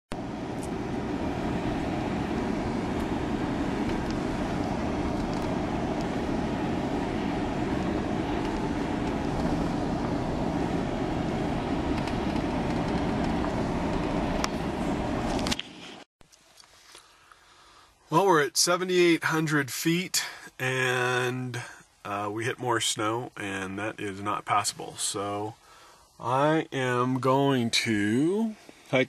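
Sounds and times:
engine and tyres rumbling: 0.1 - 16.1.

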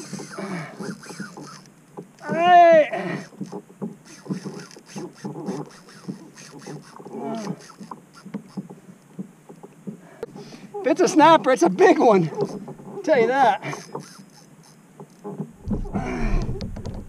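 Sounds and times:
water slapping kayak: 0.0 - 17.0
knocks and clicks on kayak: 3.2 - 10.5, 12.3 - 17.0.

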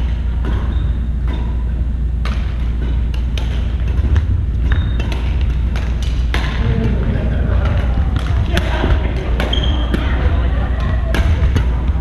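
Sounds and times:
sneaker squeaks: 0.0 - 6.3, 9.4 - 12.0
racket hitting shuttlecock: 0.0 - 11.9
low rumble: 3.8 - 12.0.

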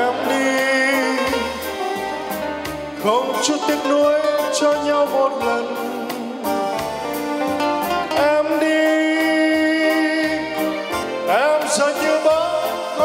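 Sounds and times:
man singing into microphone: 0.0 - 1.8, 3.0 - 6.8, 8.0 - 13.0
keyboard accompaniment: 0.0 - 13.0.

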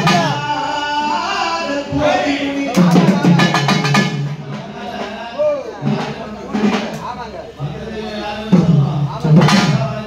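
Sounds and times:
men speaking and calling out: 0.0 - 10.0.

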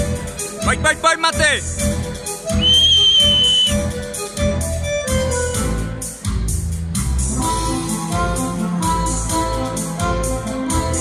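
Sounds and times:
music with a beat: 0.0 - 11.0
high steady whistle: 2.5 - 3.9.

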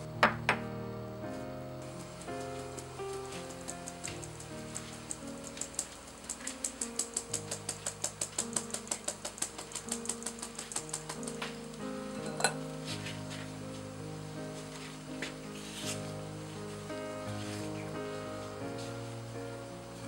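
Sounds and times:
background music: 0.0 - 20.0
metal sieve rasping: 1.9 - 11.4, 12.1 - 13.2.

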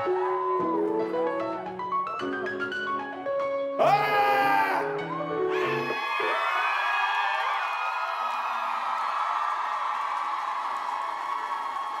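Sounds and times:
song music: 0.0 - 6.3
audience cheering and screaming: 5.5 - 12.0.

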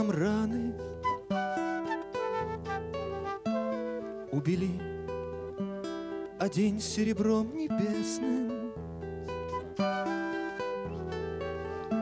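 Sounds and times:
classical guitar picking: 0.0 - 12.0
flute playing held notes: 0.9 - 4.5, 9.5 - 12.0.

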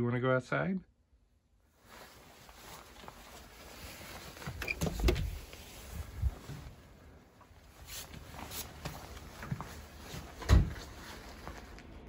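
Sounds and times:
door pulled open: 4.4 - 5.6.

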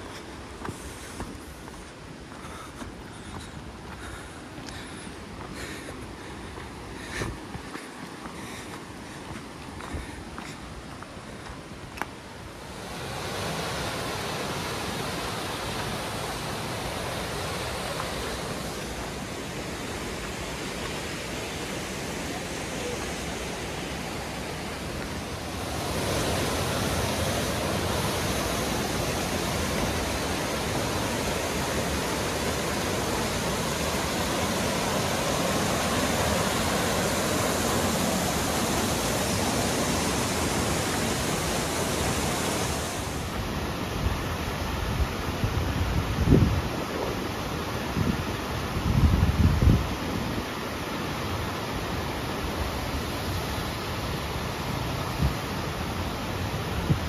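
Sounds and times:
mountain stream rushing over rapids: 0.0 - 57.0.

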